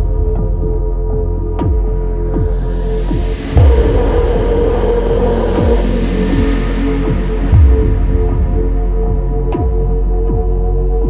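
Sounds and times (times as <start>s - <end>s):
low repeating falling beat: 0.0s - 11.0s.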